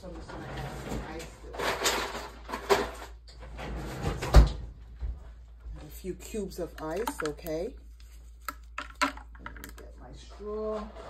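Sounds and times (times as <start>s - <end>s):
freezer door opening and shutting: 0.4s - 4.7s
ice clattering: 6.8s - 7.7s.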